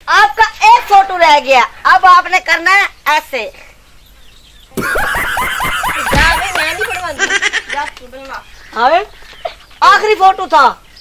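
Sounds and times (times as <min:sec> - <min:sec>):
people talking excitedly: 0:05.7 - 0:09.2.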